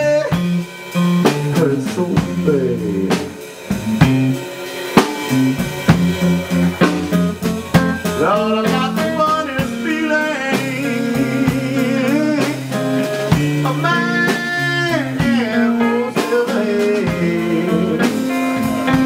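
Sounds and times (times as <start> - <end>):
drum kit played with sticks: 0.0 - 19.0
electric guitar: 0.0 - 19.0
amplified harmonica: 5.0 - 19.0.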